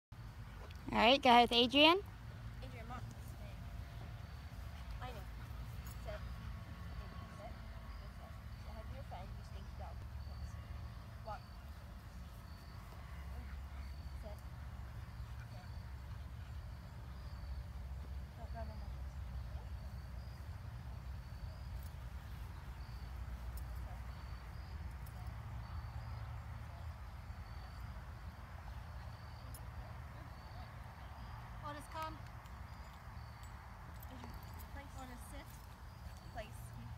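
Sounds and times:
crickets chirping: 2.0s - 36.9s.

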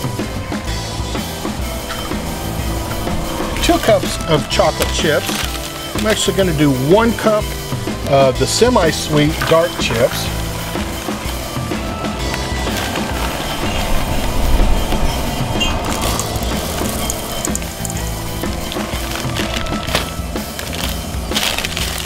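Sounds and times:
background music with steady beat: 0.0s - 22.0s
chocolate chips rattling into a cup: 3.8s - 6.3s, 15.9s - 22.0s.

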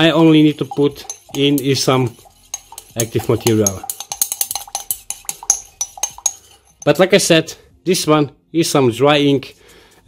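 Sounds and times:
glass rod clinking in beaker: 0.0s - 7.1s.

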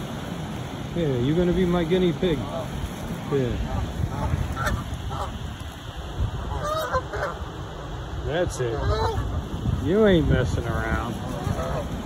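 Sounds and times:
geese honking: 3.5s - 5.6s, 6.4s - 7.6s, 8.6s - 9.4s, 10.6s - 12.0s.

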